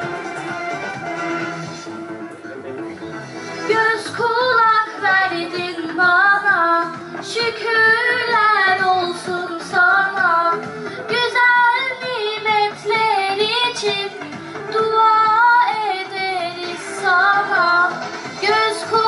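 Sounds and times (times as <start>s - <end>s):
backing music: 0.0s - 19.0s
girl singing into a microphone: 3.7s - 19.0s.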